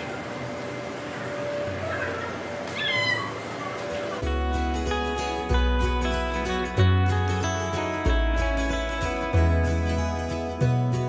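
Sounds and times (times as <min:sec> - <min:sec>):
noisy ambience: 0:00.0 - 0:11.0
guitar music: 0:04.2 - 0:11.0.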